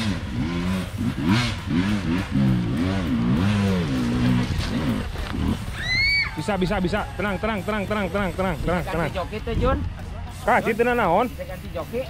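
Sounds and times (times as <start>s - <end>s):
motorbike engine revving: 0.0s - 12.0s.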